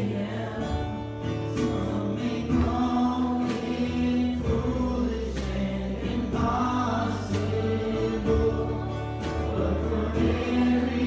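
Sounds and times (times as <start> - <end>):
youth choir singing: 0.0 - 11.0.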